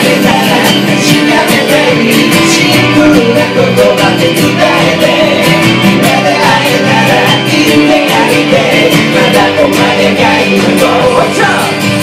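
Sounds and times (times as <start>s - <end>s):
acoustic guitar strumming: 0.0s - 12.0s
man singing into a microphone: 0.0s - 12.0s.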